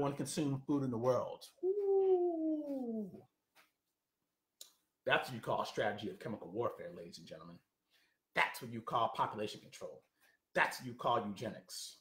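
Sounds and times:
man's sliding ooh vocal: 1.6s - 3.2s.

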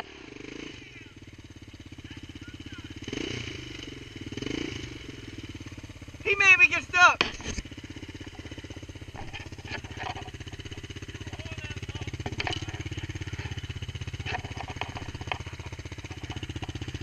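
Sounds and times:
small engine idling: 0.0s - 17.0s.

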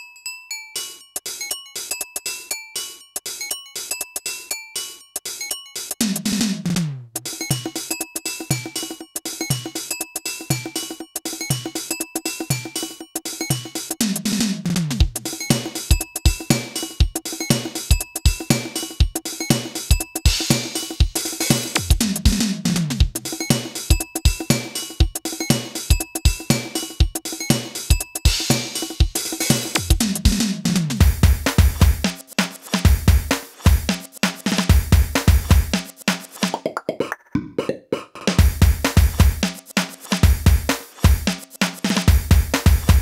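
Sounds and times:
drum machine pattern: 5.1s - 43.0s
hi-hat ticks: 7.2s - 14.0s, 15.0s - 22.4s, 23.0s - 30.2s, 31.0s - 36.6s, 38.4s - 43.0s
kick drum hits: 38.4s - 39.4s.

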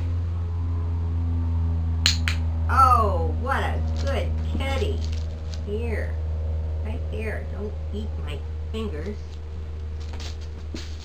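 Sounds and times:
faint steady tones: 0.0s - 10.7s
steady low hum: 0.0s - 11.0s.

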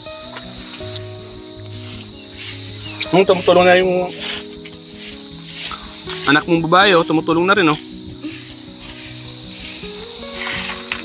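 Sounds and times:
stick broom sweeping dirt and leaves: 0.0s - 11.0s.

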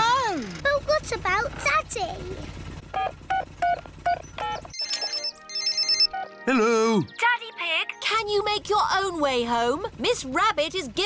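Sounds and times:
electronic keypad beeps: 3.0s - 6.4s
mobile phone ringing trill: 3.0s - 6.4s.

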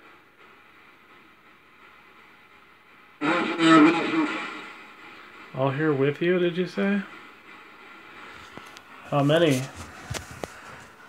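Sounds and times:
voice-like radio fragment: 3.2s - 4.8s
radio static hiss: 3.2s - 7.4s, 8.1s - 11.0s.

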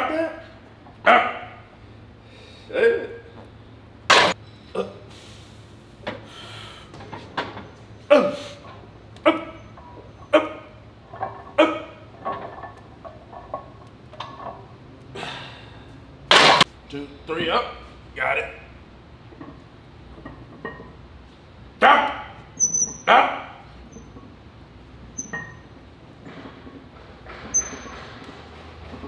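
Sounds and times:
men grunting and shouting: 8.1s - 8.6s.

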